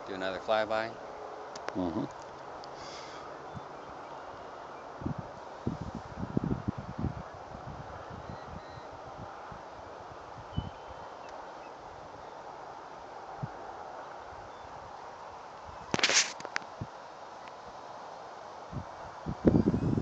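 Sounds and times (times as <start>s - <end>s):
wind on microphone: 3.4s - 4.0s, 4.8s - 12.3s, 13.3s - 13.7s, 18.6s - 20.0s.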